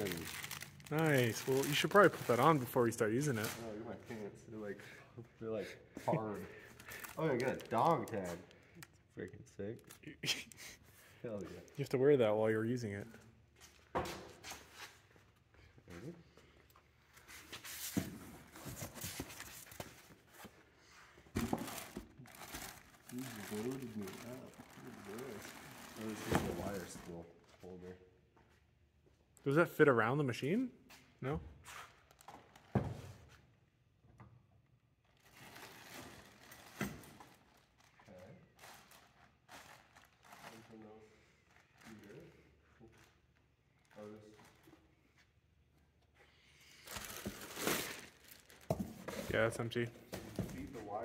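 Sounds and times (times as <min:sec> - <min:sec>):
packaging rustling: 0:00.0 - 0:03.7, 0:06.6 - 0:08.4, 0:21.4 - 0:27.1, 0:46.8 - 0:49.3.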